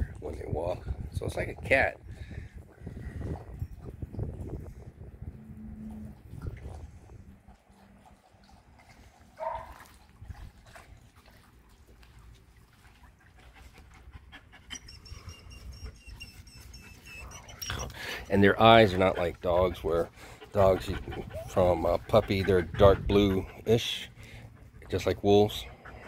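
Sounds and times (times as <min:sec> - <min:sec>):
dogs panting: 0:06.8 - 0:26.0.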